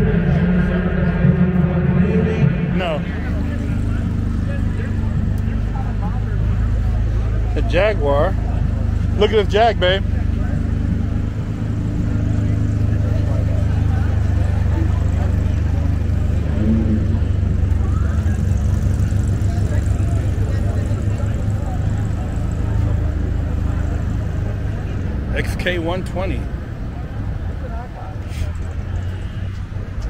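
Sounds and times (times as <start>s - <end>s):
crowd chatter: 0.0s - 30.0s
low machinery rumble: 0.0s - 30.0s.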